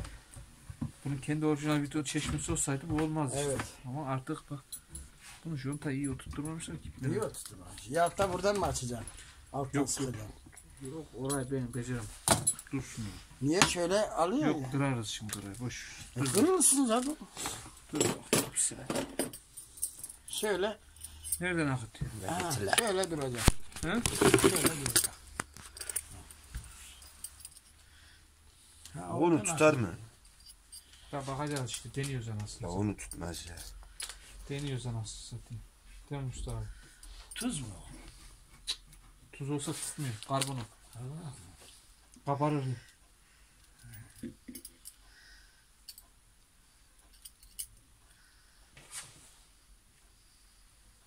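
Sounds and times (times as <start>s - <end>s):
phone handling clicks and rustles: 22.4s - 26.1s.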